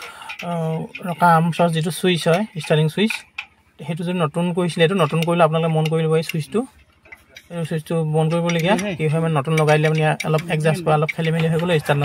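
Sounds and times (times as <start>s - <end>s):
man speaking: 0.4s - 3.2s, 3.8s - 12.0s.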